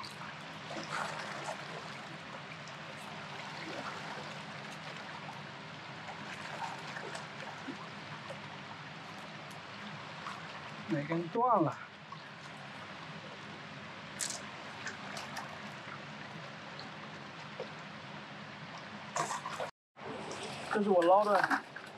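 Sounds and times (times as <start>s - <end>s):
river water running: 0.0s - 21.9s.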